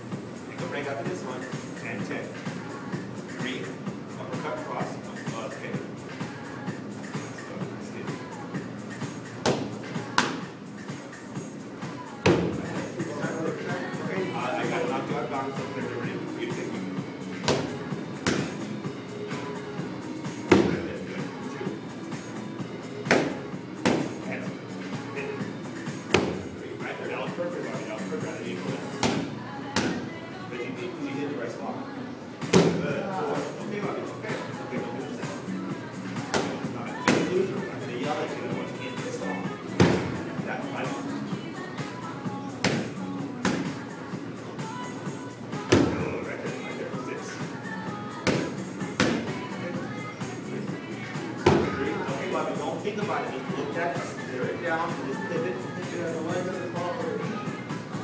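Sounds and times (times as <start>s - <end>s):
background music: 0.0s - 58.0s
boxing gloves striking pad: 23.1s - 24.1s.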